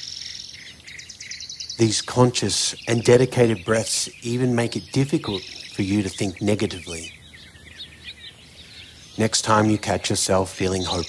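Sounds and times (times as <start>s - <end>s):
faint birds chirping: 0.0s - 11.0s
soft outdoor hiss: 0.0s - 11.0s.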